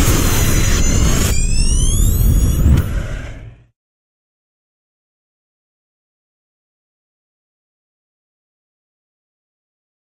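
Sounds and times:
deep synthesized rumble: 0.0s - 3.7s
rising whooshing sweeps: 0.5s - 3.7s.

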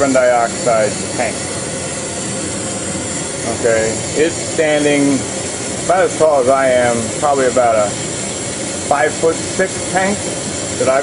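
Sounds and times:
fog machine rushing hiss: 0.0s - 11.0s.

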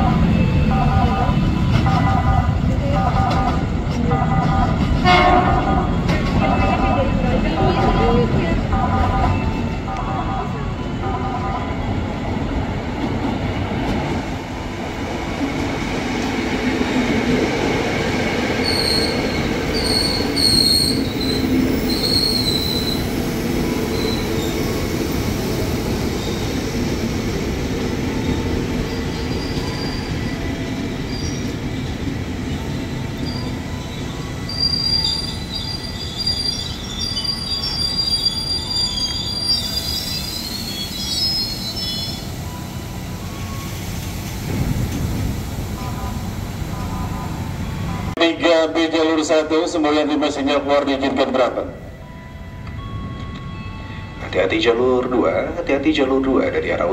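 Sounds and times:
electric train running rumble: 0.0s - 56.9s
high-pitched train squeals: 18.6s - 26.8s, 28.1s - 44.6s.

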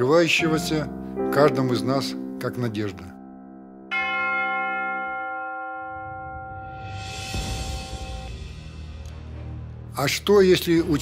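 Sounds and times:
large tower bell ringing: 3.9s - 8.4s.

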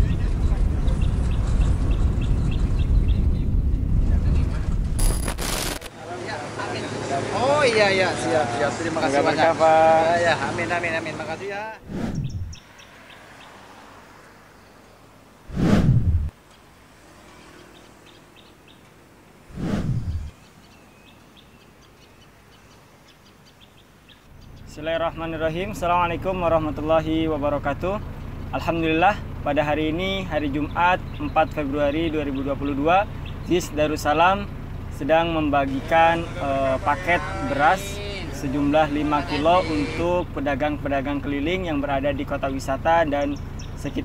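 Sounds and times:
car driving rumble: 0.0s - 5.9s, 19.4s - 20.4s, 24.2s - 44.0s
whoosh sound effect: 11.8s - 12.6s, 15.5s - 16.3s, 19.5s - 20.3s.

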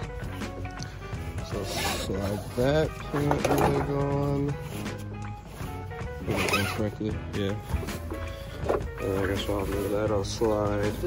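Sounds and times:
cloth rustling: 1.4s - 11.0s.

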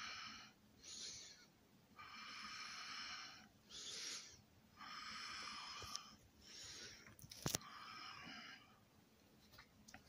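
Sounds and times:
close breathing: 0.0s - 8.9s.

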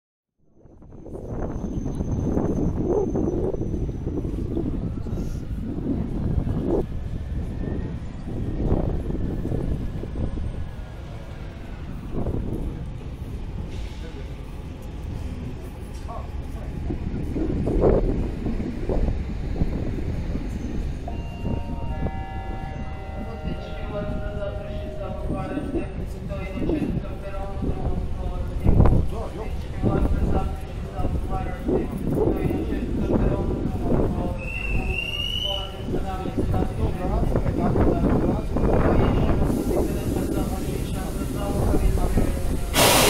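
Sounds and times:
low rumble of trains: 0.4s - 43.0s
crowd chatter: 4.3s - 43.0s
electric train high tones: 20.5s - 25.8s.

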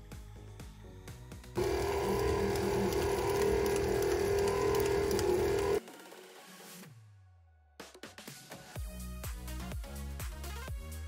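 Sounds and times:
background music: 0.0s - 11.0s
stand mixer motor hum: 1.6s - 5.8s.

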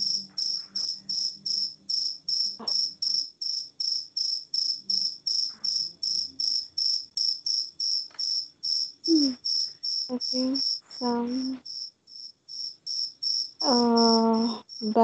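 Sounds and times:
high-pitched insect chirping: 0.0s - 15.0s.

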